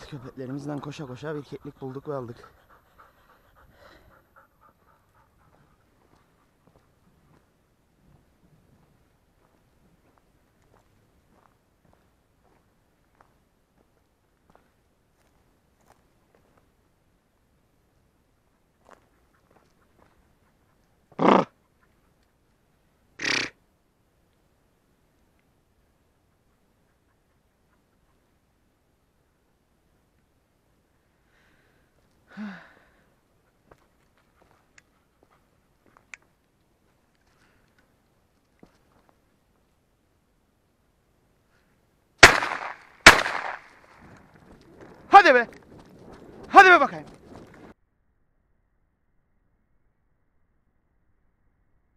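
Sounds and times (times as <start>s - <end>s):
short loud vocal calls: 21.1s - 21.6s, 23.2s - 23.6s
shotgun shots: 42.2s - 43.9s.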